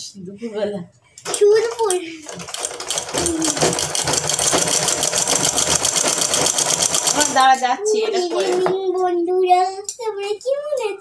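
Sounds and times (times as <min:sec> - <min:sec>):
sewing machine stitching: 0:01.2 - 0:07.6.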